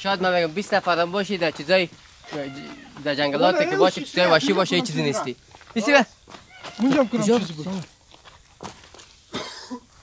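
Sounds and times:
person talking: 0.1 - 6.1, 6.8 - 7.9
footsteps on stony trail: 0.2 - 9.5
person coughing: 9.3 - 9.9.

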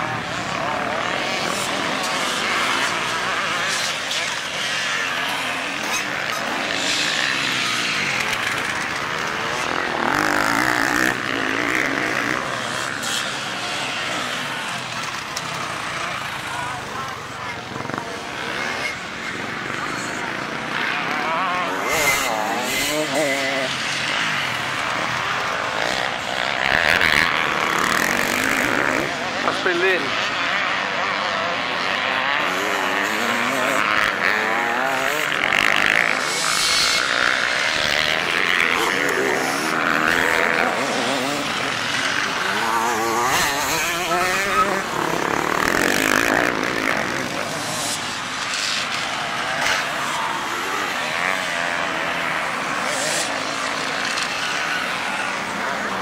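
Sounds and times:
motorcycles revving: 0.0 - 56.0.

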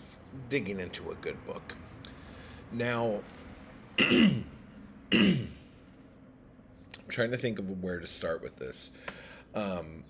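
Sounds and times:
man clearing his throat: 4.0 - 5.6.

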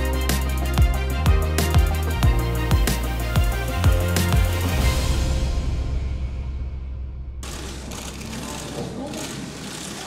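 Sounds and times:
low background music: 0.0 - 9.4.

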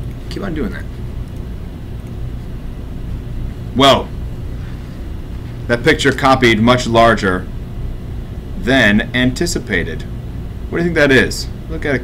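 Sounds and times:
steady low hum: 0.0 - 12.0
faint clicks: 1.2 - 2.2.

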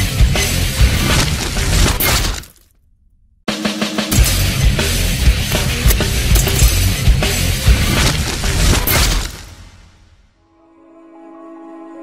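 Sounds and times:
glass shattering: 1.0 - 2.8, 4.1 - 7.1, 7.9 - 9.5.

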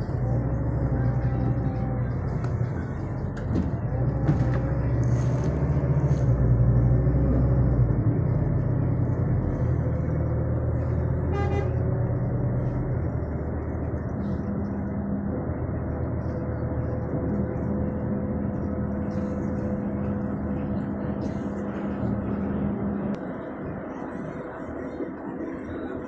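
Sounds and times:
bus engine and road rumble: 0.0 - 26.0
brief horn toot: 11.2 - 11.9.

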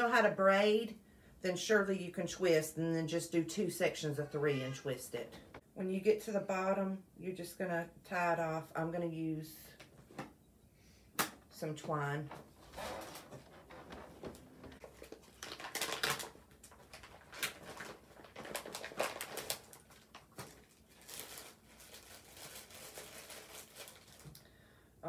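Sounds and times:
plastic packaging crinkling: 12.6 - 24.5.

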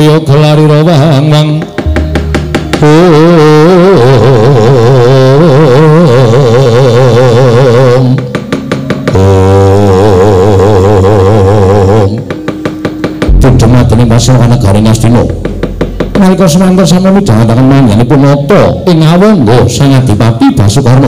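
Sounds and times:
gamelan melody with vibrato: 0.8 - 19.3
sharp knocks: 1.5 - 4.6, 8.0 - 9.6, 12.2 - 18.2
low sustained drone: 1.8 - 18.8.

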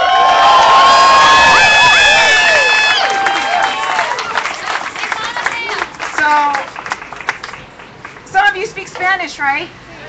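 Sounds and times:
crowd cheering and whooping: 0.0 - 5.8.

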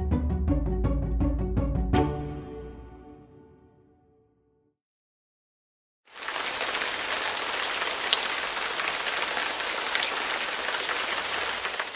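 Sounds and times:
heavy rain: 6.1 - 11.9.

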